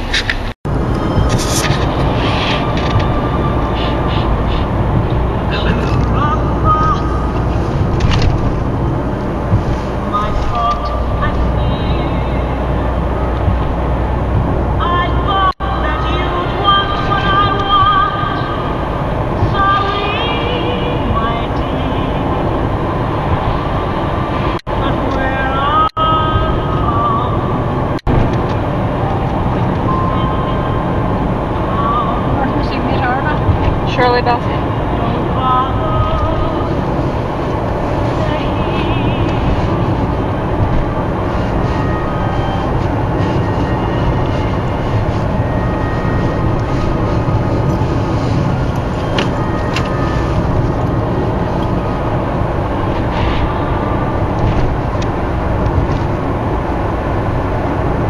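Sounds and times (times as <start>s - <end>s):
road and engine noise in car: 0.0s - 58.0s
singing voice or music: 14.8s - 22.5s, 24.7s - 27.8s, 29.8s - 33.0s.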